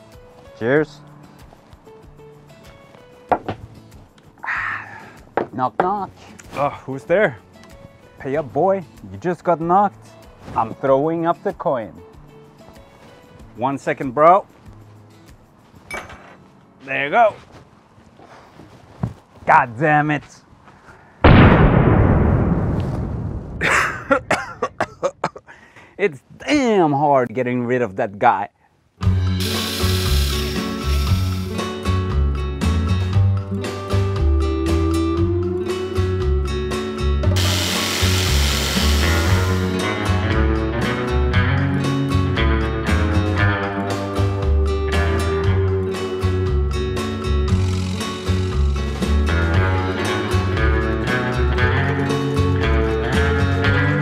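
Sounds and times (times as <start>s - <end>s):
soft background music: 0.0s - 20.6s, 29.0s - 54.0s
drill boring into wood: 29.4s - 31.6s, 37.4s - 39.9s, 47.5s - 48.7s.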